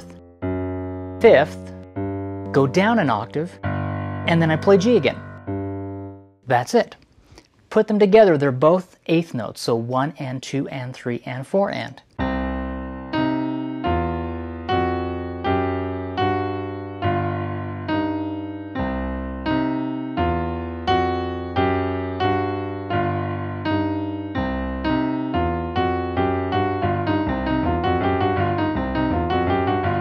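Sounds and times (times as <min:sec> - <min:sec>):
digital piano boogie-woogie: 0:00.0 - 0:06.7, 0:12.2 - 0:30.0.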